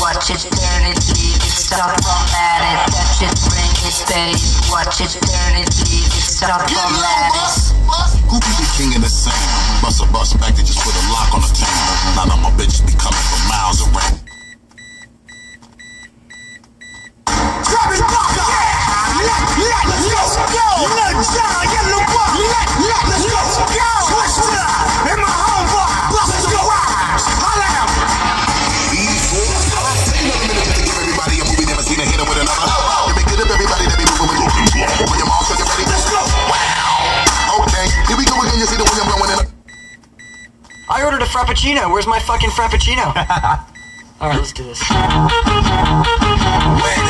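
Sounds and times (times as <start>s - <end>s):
loud music: 0.0s - 14.3s, 17.3s - 39.6s, 44.8s - 47.0s
bass-heavy hip hop car stereo: 0.0s - 47.0s
car warning chime beeping: 14.2s - 17.2s, 37.8s - 41.2s, 43.2s - 44.2s.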